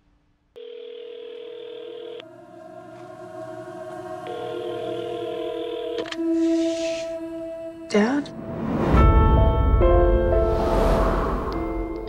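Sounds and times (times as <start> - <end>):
telephone ringing tone: 0.6 - 2.3, 4.3 - 6.2
low drone: 2.2 - 12.0.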